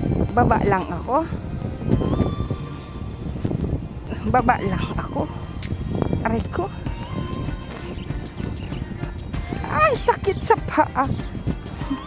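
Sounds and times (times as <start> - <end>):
background music: 0.0 - 12.0
low thumps and rumble: 0.0 - 12.0.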